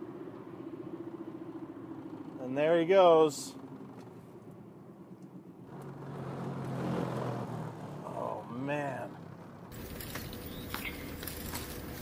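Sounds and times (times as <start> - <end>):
car engine hum and road noise: 0.0 - 12.0.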